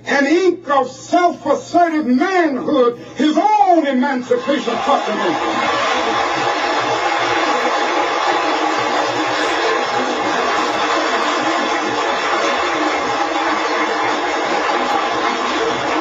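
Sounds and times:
crowd applauding and cheering: 0:04.3 - 0:16.0.

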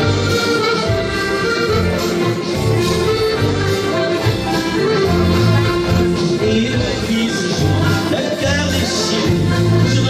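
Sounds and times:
accordion playing melody: 0:00.0 - 0:10.0.

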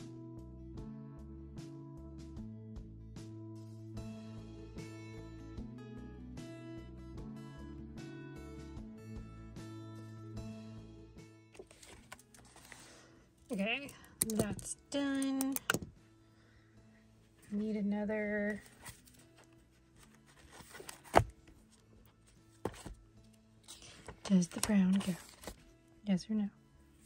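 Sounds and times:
soft background music: 0:00.0 - 0:27.0.

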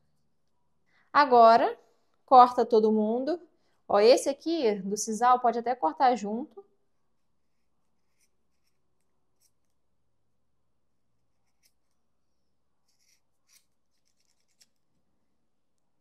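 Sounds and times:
scissor snips: 0:12.8 - 0:14.8.

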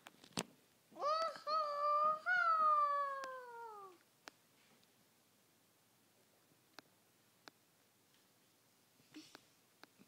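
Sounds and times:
girl singing a long vowel: 0:01.0 - 0:04.0.

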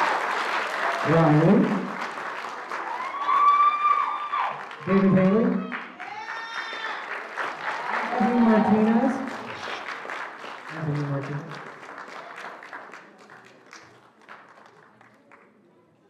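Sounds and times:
audience applauding: 0:00.0 - 0:15.6.

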